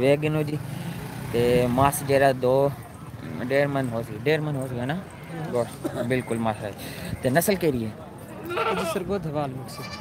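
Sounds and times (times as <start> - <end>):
men talking: 1.3 - 10.0.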